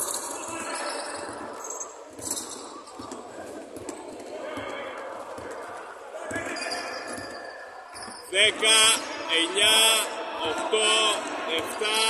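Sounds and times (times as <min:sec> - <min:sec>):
faint voices of players: 0:00.0 - 0:12.0.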